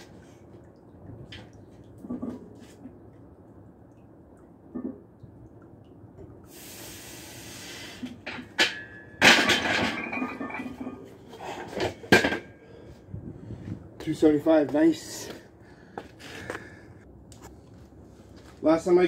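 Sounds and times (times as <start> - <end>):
hiss: 6.5 - 8.2.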